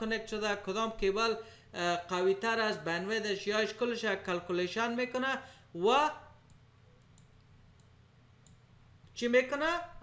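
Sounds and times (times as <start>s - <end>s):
computer mouse clicks: 6.4s - 8.6s.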